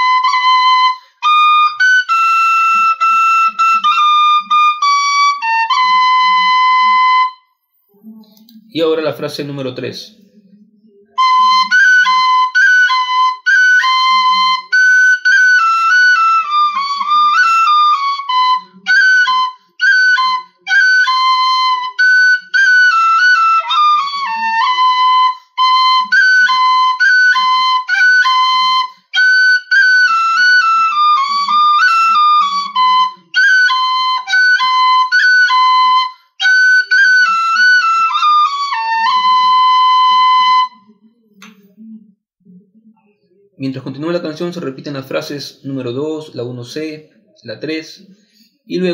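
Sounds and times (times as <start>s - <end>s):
tin whistle melody: 0.0s - 7.6s, 11.1s - 40.9s.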